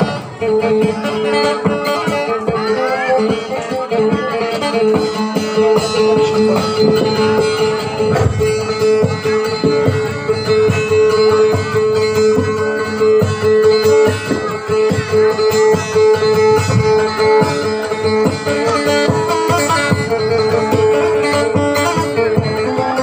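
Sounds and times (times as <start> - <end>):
acoustic guitar plucked melody: 0.0 - 23.0.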